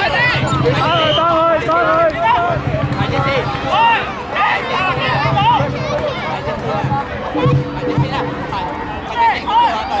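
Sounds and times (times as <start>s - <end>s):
young children calling and chattering: 0.0s - 10.0s.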